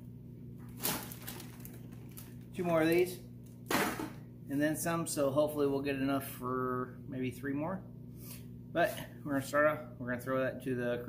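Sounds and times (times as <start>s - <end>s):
steady low hum: 0.0s - 11.0s
plastic bag rustling: 0.6s - 4.0s.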